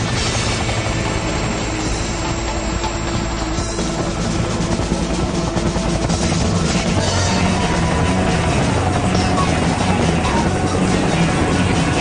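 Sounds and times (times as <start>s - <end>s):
background music: 0.0s - 12.0s
helicopter rotor and engine: 0.0s - 12.0s.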